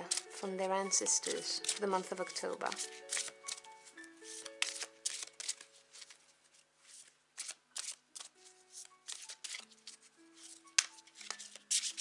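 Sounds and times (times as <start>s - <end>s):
cards being shuffled: 0.0s - 0.4s, 1.0s - 12.0s
soft background music: 0.0s - 12.0s.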